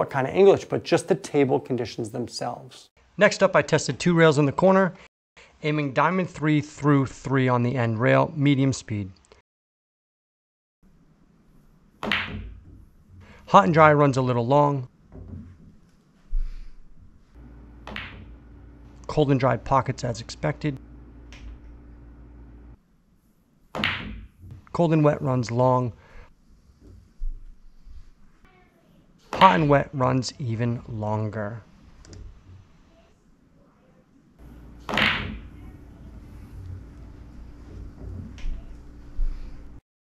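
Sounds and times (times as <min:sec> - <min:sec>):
cue striking ball: 0:12.0 - 0:12.6, 0:17.8 - 0:18.4, 0:34.7 - 0:35.7
low steady hum: 0:16.9 - 0:22.8, 0:34.4 - 0:39.8
billiard balls clacking: 0:17.8 - 0:19.1, 0:34.4 - 0:35.6.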